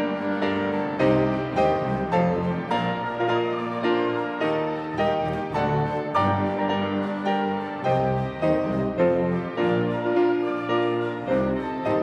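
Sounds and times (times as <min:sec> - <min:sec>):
grand piano playing chords: 0:00.0 - 0:12.0.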